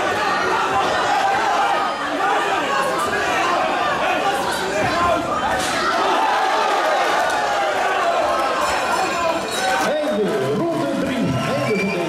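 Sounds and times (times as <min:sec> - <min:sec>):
crowd chattering and calling out: 0:00.0 - 0:12.0.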